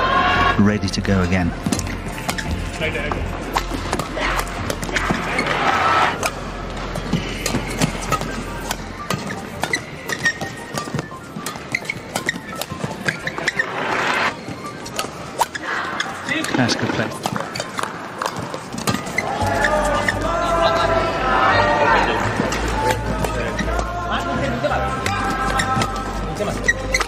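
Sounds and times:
crowd noise: 0:00.0 - 0:27.0
shoes squeaking on court: 0:01.6 - 0:02.8, 0:07.0 - 0:20.2, 0:25.0 - 0:27.0
rackets striking shuttlecock: 0:07.0 - 0:13.6, 0:14.4 - 0:19.3.

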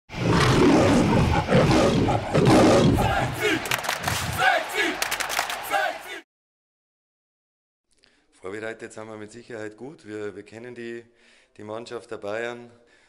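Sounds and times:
crowd shouting and chanting: 0:02.1 - 0:06.2
sharp claps: 0:03.1 - 0:06.2.

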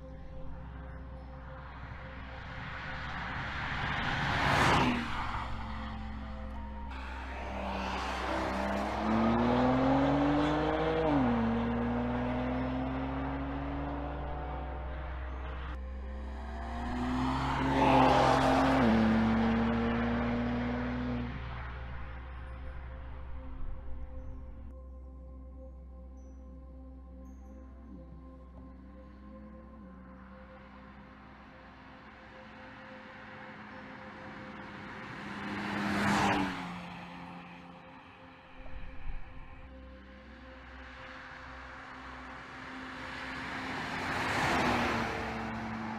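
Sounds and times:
car engine accelerating hard: 0:02.8 - 0:23.2, 0:32.3 - 0:38.0, 0:41.5 - 0:45.9.

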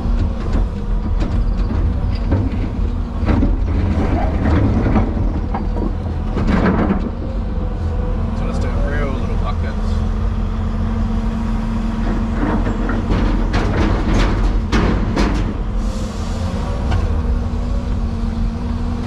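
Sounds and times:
diesel engine running: 0:00.0 - 0:19.0
concrete clattering into truck body: 0:01.2 - 0:07.2, 0:12.2 - 0:15.7.

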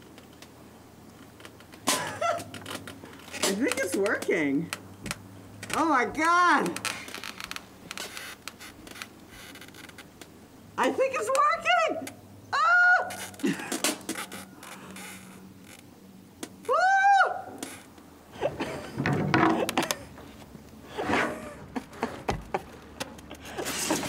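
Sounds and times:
boat hull knocking against dock: 0:18.7 - 0:19.9.

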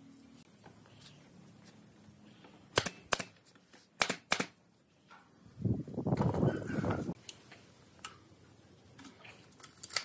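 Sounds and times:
nail gun firing: 0:02.7 - 0:03.4, 0:04.0 - 0:04.6.

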